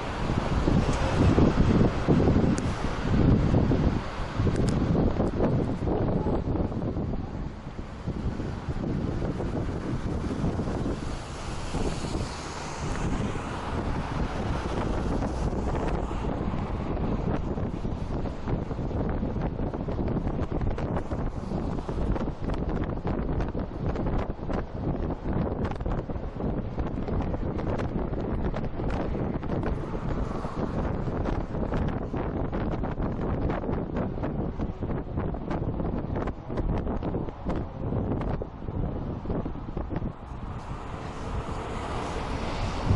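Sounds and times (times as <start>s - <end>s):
car road noise: 0.0s - 42.9s
wind buffeting microphone: 0.0s - 42.9s.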